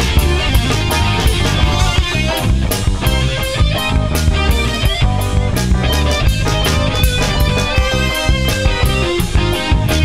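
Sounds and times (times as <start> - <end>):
drum kit steady beat: 0.0 - 10.0
rock guitar: 0.0 - 10.0.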